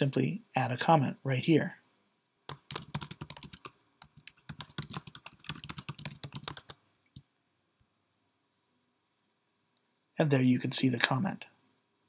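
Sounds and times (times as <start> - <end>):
typing on computer keyboard: 2.5 - 6.8.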